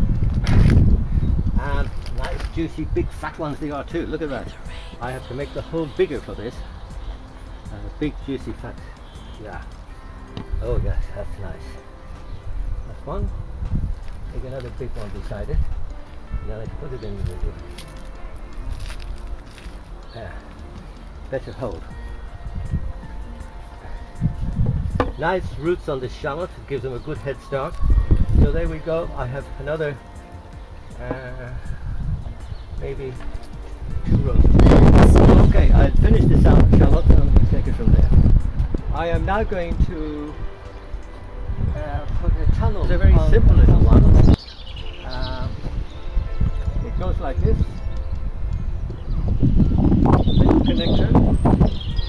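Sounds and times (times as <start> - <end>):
wind rumble on microphone: 0.0 - 5.1, 10.4 - 17.7, 21.5 - 25.7, 27.7 - 29.1, 31.3 - 52.0
crackles and rustles in soil: 0.0 - 6.6, 7.4 - 22.1
outdoor background: 0.0 - 52.0.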